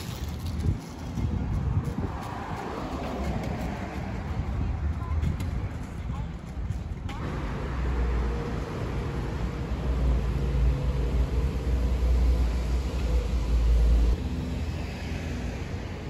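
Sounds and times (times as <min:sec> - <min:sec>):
bus engine rumble: 0:00.0 - 0:16.0
traffic noise: 0:00.0 - 0:16.0.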